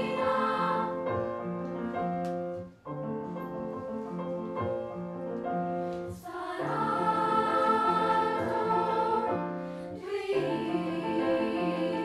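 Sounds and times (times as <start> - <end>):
children's chorus singing: 0.0 - 1.1, 6.1 - 12.0.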